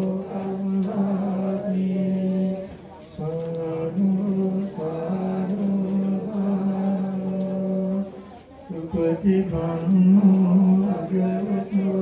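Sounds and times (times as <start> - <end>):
person chanting long steady notes: 0.0 - 12.0.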